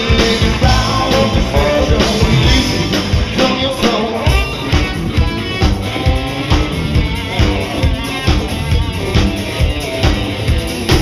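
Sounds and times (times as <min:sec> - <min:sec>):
drum kit steady beat: 0:00.0 - 0:11.0
electric guitar: 0:00.0 - 0:11.0.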